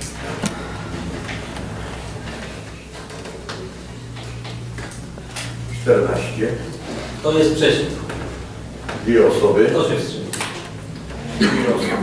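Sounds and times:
second hum tone: 0.0 - 9.5
low electrical hum: 0.0 - 12.0.

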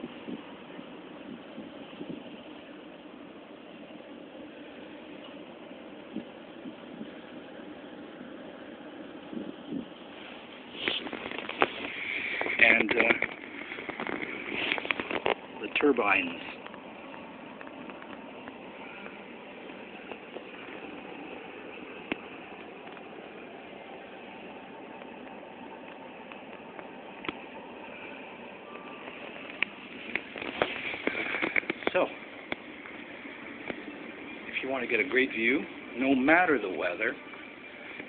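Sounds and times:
room noise hiss: 0.0 - 38.0
man speaking: 15.6 - 16.6.

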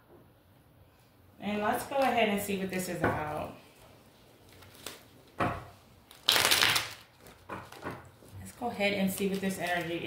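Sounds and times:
cards being shuffled: 6.1 - 8.3.

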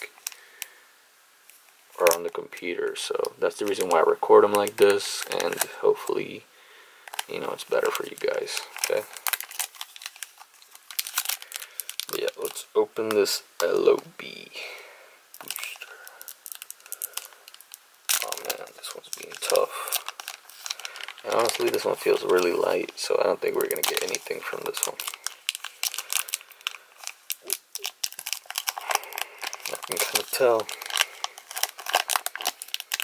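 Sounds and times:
foil wrapper crinkling: 0.0 - 0.8, 1.5 - 6.3, 7.1 - 14.1, 15.4 - 33.0.

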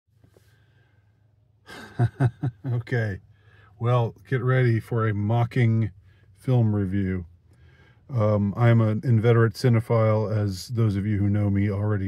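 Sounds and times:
faint low hum: 0.4 - 12.0
man sighing: 1.7 - 2.8.

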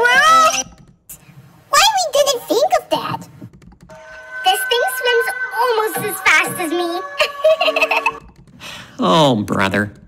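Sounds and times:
high gliding vocal sounds: 4.0 - 8.2
cartoon child voice speaking: 4.5 - 7.3.

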